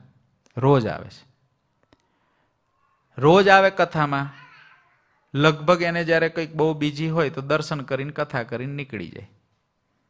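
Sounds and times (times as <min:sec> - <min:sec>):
man speaking into microphone: 0:00.6 - 0:01.3, 0:03.2 - 0:04.4, 0:05.4 - 0:09.4.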